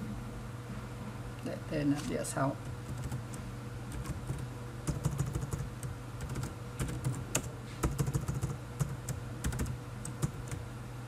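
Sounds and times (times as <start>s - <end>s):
low steady hum: 0.0s - 11.0s
computer keyboard typing: 2.6s - 10.6s.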